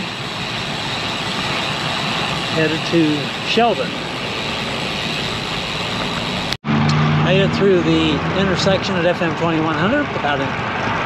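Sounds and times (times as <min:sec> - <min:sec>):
wind and road noise: 0:00.0 - 0:11.0.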